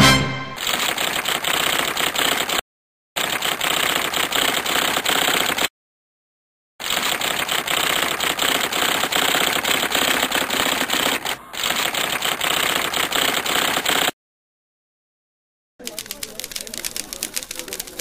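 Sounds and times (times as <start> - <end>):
typewriter keys clacking: 15.8 - 18.0.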